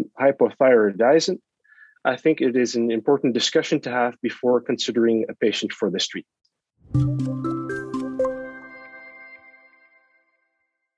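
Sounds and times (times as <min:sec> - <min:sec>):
bright music sting notes: 0:06.9 - 0:09.9.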